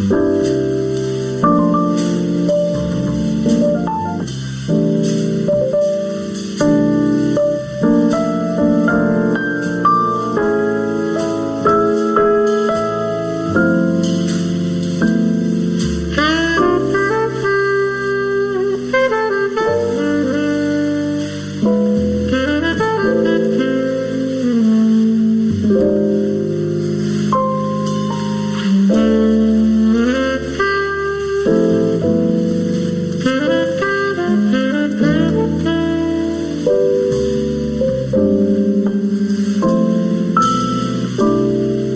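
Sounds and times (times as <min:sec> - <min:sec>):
piano accompaniment: 0:00.0 - 0:41.9
saxophone melody: 0:00.0 - 0:41.9.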